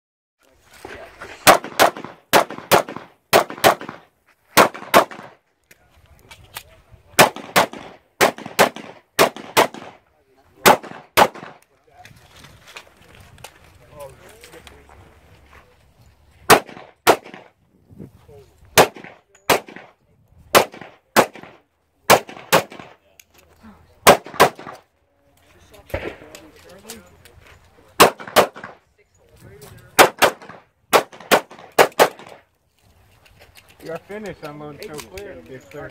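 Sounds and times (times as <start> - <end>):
pistol shots: 1.4 - 5.4, 7.2 - 10.0, 10.6 - 11.6, 16.5 - 17.5, 18.8 - 23.0, 24.0 - 24.8, 28.0 - 28.8, 30.0 - 32.4.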